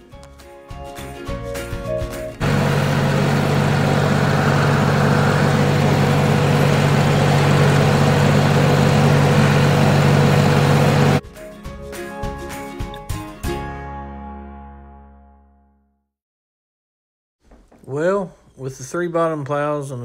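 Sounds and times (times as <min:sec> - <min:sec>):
tractor diesel engine droning: 0:02.4 - 0:11.2.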